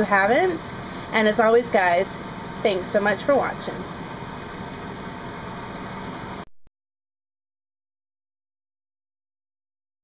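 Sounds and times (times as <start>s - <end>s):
room hum and hiss: 0.0s - 6.5s.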